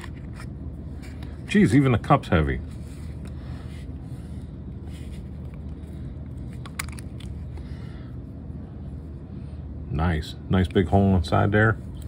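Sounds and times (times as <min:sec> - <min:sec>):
low background hum: 0:00.0 - 0:12.0
faint clicks of metal parts: 0:05.4 - 0:07.7.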